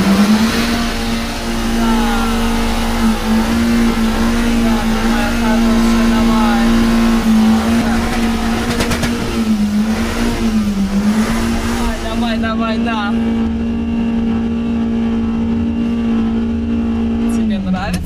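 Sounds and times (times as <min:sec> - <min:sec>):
car engine at high revs: 0:00.0 - 0:18.0.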